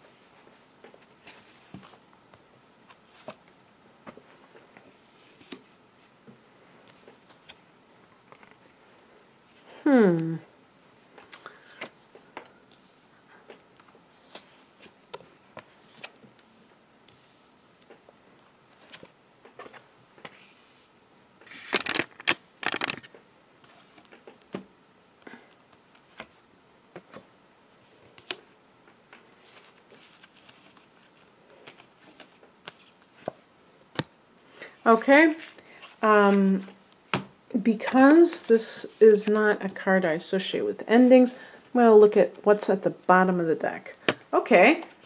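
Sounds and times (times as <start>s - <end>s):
card rustling: 21.4s - 24.2s.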